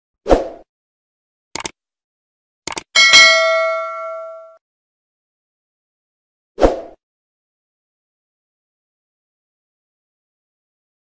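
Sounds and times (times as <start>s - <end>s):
double clicks: 1.6s - 1.8s, 2.7s - 2.9s
bell ding: 3.0s - 4.6s.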